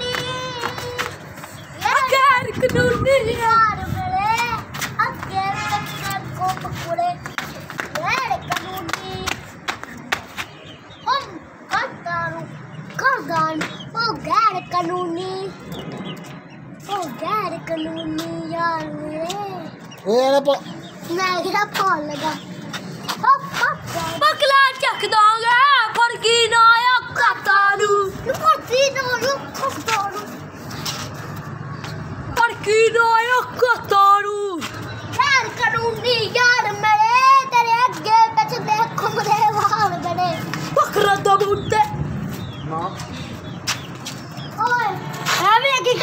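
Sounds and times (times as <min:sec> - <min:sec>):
child singing: 0:00.0 - 0:01.2.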